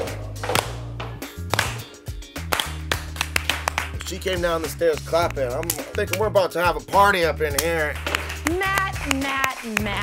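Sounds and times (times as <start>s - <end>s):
background music with low bass: 0.0s - 10.0s
person clapping hands: 0.4s - 6.4s, 7.5s - 10.0s.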